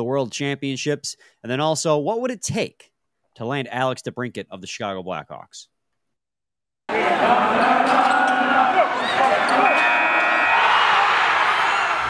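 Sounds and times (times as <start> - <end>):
arena crowd din: 6.9 - 12.0
buzzer: 9.4 - 10.6.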